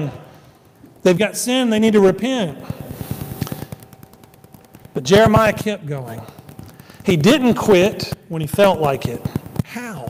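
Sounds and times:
faint clicks and crackles: 0.0 - 10.0.

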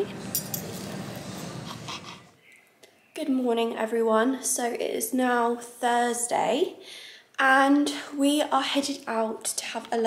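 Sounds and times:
restaurant room tone: 0.0 - 2.4.

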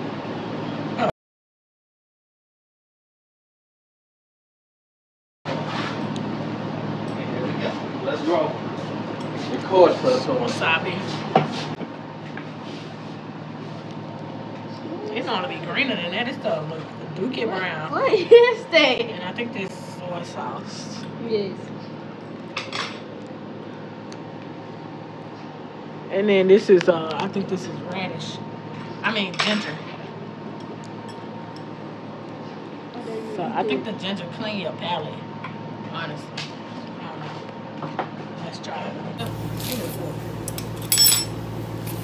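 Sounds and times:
metallic clink: 40.2 - 42.0.

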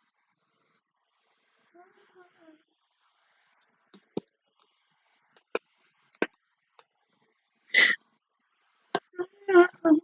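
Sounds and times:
person breathy huff: 7.7 - 8.0.

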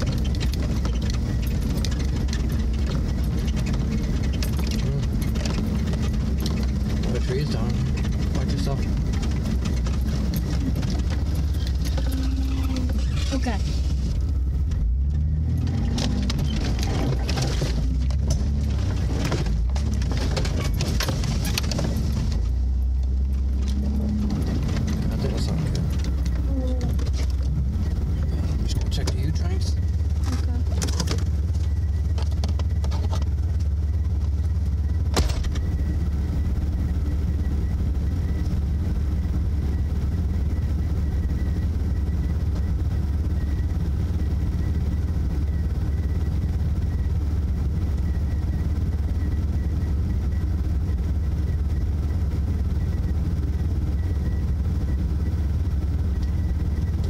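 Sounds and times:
car engine running: 0.0 - 57.0
branches scraping along car body: 7.8 - 14.4.

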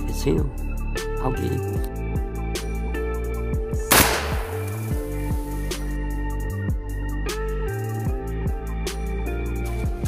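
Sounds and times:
background music: 0.0 - 10.0
gunshot with echo: 3.9 - 5.1.

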